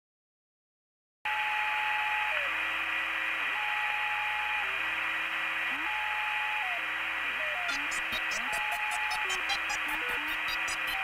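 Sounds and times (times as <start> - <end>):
radio static hiss: 3.3 - 11.0
held electronic tones: 7.5 - 11.0.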